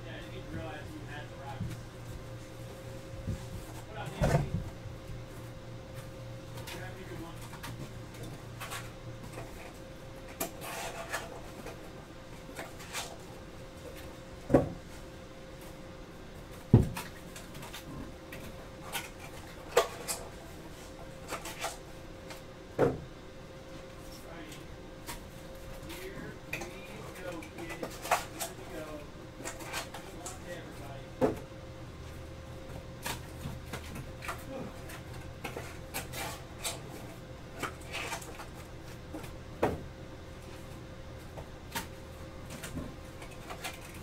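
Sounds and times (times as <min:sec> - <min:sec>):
electrical hum: 0:00.0 - 0:44.0.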